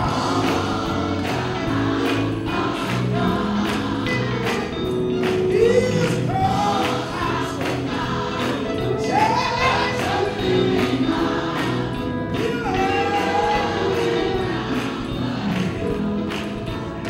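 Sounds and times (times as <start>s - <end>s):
gospel choir singing: 0.0s - 17.0s
instrumental accompaniment: 0.0s - 17.0s
percussion beat: 0.0s - 17.0s.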